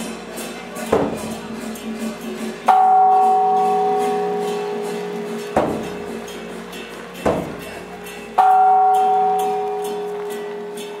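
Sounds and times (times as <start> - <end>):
bell-like metal stroke ringing: 1.8 - 11.0.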